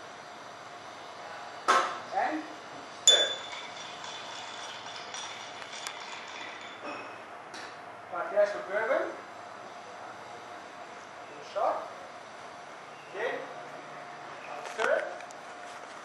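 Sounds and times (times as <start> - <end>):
glassware clinking: 3.1 - 7.2.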